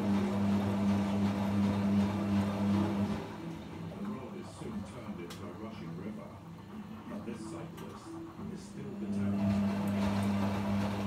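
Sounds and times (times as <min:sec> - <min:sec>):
washing machine drum turning: 0:00.0 - 0:11.0
washing machine motor hum: 0:00.0 - 0:11.0.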